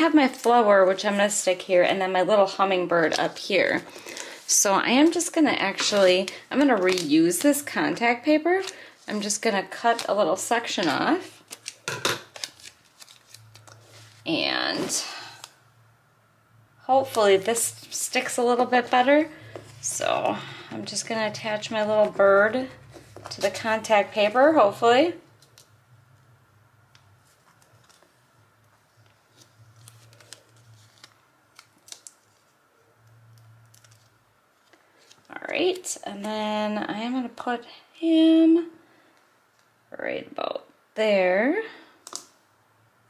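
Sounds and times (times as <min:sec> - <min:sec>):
low steady hum: 0:00.0 - 0:43.0
faint paper rustling: 0:03.0 - 0:15.5, 0:17.0 - 0:24.6, 0:27.0 - 0:32.6, 0:33.6 - 0:35.8
crackling paper and ticks: 0:05.7 - 0:07.8, 0:10.8 - 0:13.8, 0:29.0 - 0:35.8.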